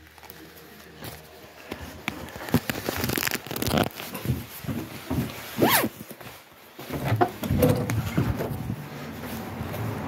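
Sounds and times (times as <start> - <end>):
clothing rustling on microphone: 0.0 - 10.0.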